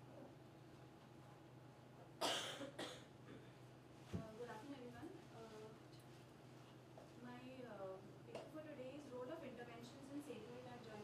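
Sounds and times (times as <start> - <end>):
person coughing: 2.2 - 3.5.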